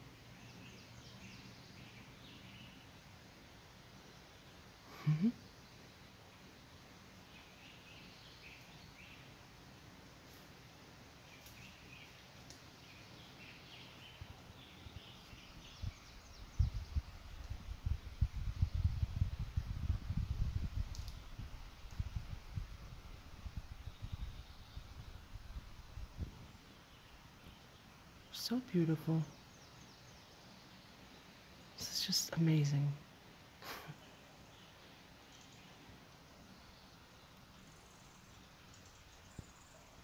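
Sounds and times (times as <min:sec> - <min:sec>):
faint bird chirps: 0:04.0 - 0:09.4, 0:11.2 - 0:22.7, 0:23.3 - 0:33.0, 0:33.6 - 0:40.0.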